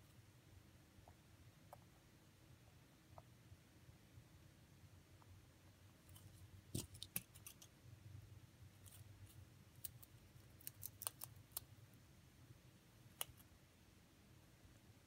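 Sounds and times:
rabbit biting pinecone cracks: 0:08.8 - 0:11.7.

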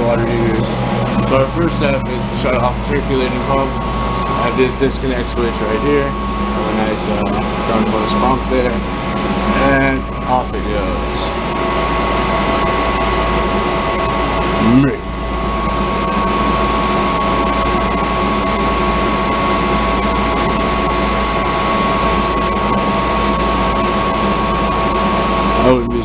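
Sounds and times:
high-pitched hum: 0:00.0 - 0:26.0
loud machinery drone: 0:00.0 - 0:26.0.

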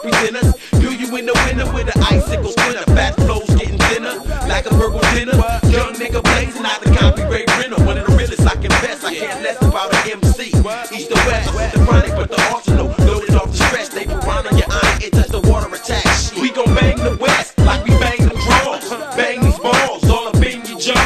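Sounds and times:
rapping over a beat: 0:00.0 - 0:21.0
deep sliding bass hits: 0:01.4 - 0:08.8.

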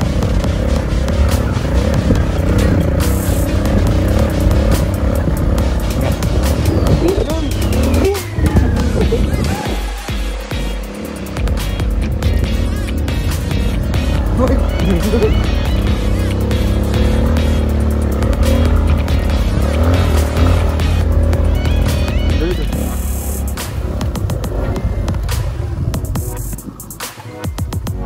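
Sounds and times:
motorcycle engine revving: 0:00.0 - 0:28.0
music playing: 0:00.0 - 0:28.0.

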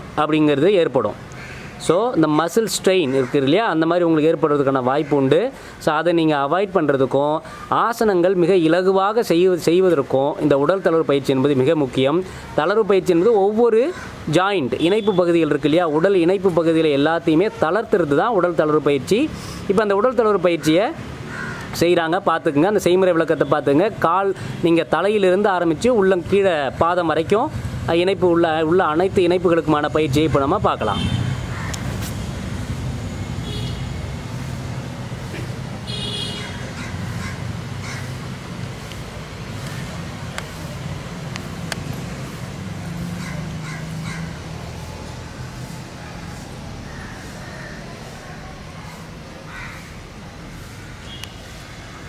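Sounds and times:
man speaking: 0:01.8 - 0:21.0, 0:21.8 - 0:31.2.

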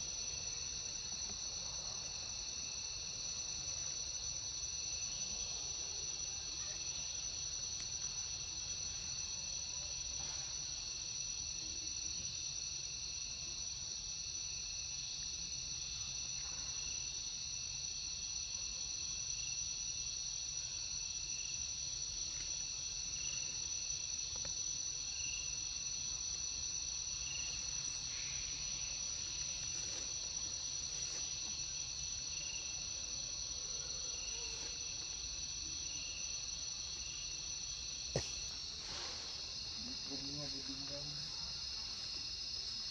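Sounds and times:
high-pitched insect chorus: 0:00.0 - 0:42.9.

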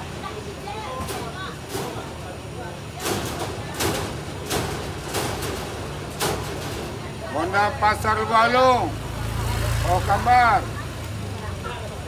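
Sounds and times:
bus engine idling: 0:00.0 - 0:12.0.

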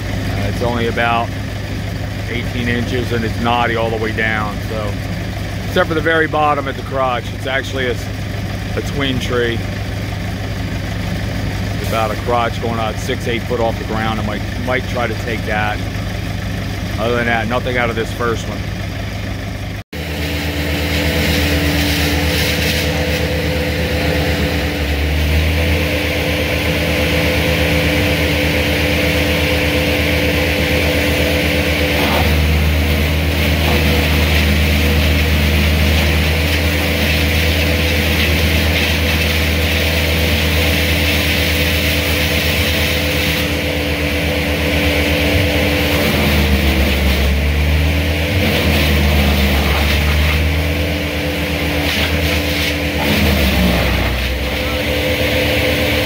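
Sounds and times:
heavy machinery engine running: 0:00.0 - 0:56.0.

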